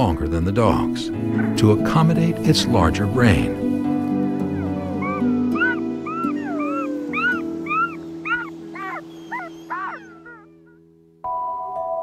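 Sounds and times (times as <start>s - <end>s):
soft music with held notes: 0.0s - 12.0s
wolf cubs whining: 4.1s - 10.9s.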